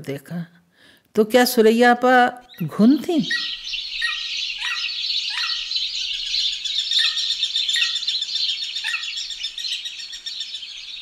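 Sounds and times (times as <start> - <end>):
small birds chirping: 2.3 - 11.0.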